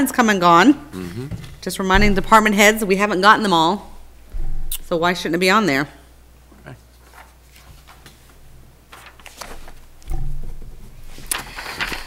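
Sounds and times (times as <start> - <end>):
paper sheets rustling: 6.9 - 10.1, 10.8 - 12.0.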